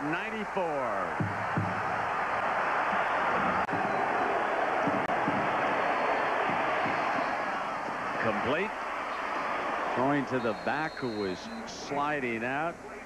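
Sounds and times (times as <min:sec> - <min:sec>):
stadium crowd din: 0:00.0 - 0:13.0.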